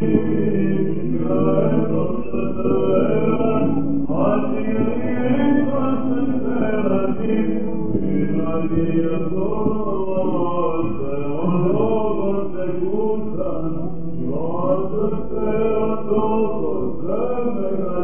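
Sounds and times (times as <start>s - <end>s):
men chanting melismatic melody: 0.0s - 18.0s.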